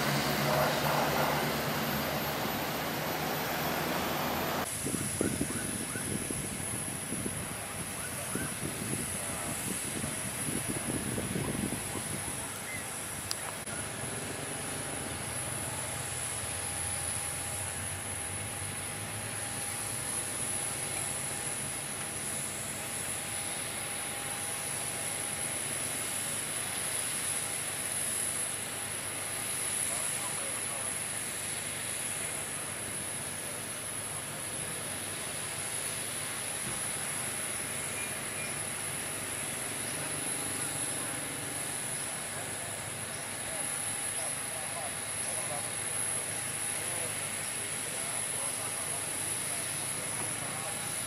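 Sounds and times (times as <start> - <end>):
jet airliner engine whine: 0.0 - 51.0.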